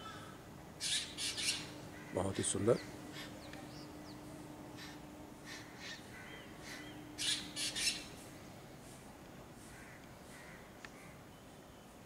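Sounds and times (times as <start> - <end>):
birds calling harshly: 0.0 - 8.6, 9.6 - 12.0.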